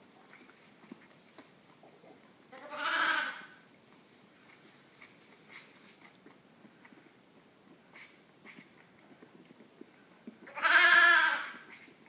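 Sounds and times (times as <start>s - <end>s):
lamb bleating: 2.5s - 3.6s, 10.5s - 11.7s.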